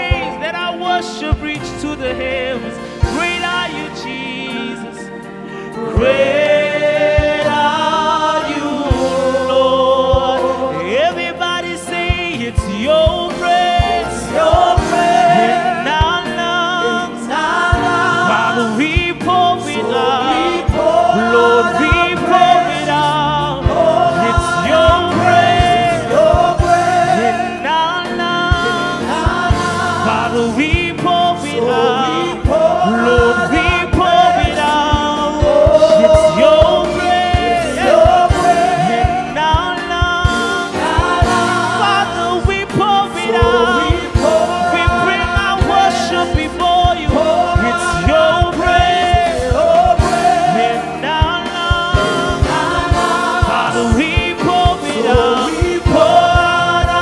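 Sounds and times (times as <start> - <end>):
choir singing worship song: 0.0 - 57.0
instrumental backing with bass: 0.0 - 57.0.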